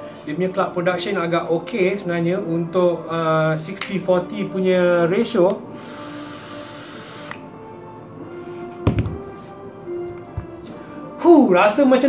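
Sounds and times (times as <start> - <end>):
faint background music: 0.0 - 12.0
e-cigarette draw hiss: 5.8 - 7.5
soft knock: 8.8 - 9.3.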